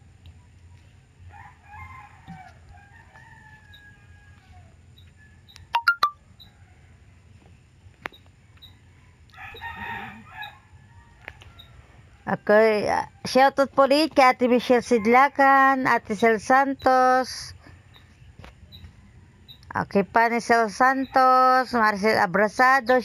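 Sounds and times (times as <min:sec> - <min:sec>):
rooster crowing: 0:01.3 - 0:05.4, 0:08.5 - 0:12.4.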